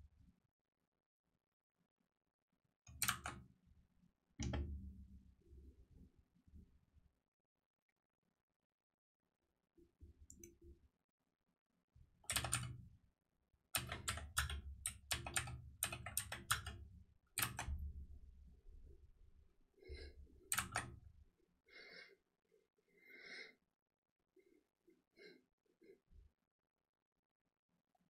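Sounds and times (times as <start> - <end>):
typing on computer keyboard: 2.9 - 3.4, 12.3 - 12.8, 13.8 - 16.8, 17.4 - 17.8, 20.5 - 21.0.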